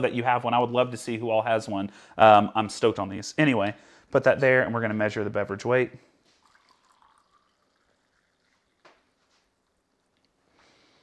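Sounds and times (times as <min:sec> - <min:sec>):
coffee pouring into a cup: 0:06.3 - 0:10.4.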